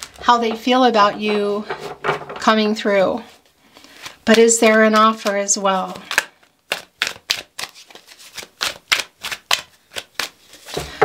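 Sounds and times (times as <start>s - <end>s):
cards being shuffled: 0.0s - 2.3s, 3.4s - 11.0s.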